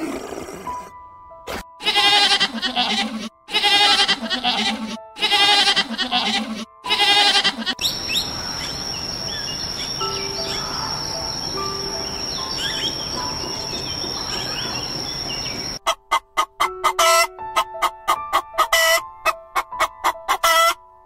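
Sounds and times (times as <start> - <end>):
goat bleating: 1.8 - 7.8
bird chirps: 7.8 - 15.8.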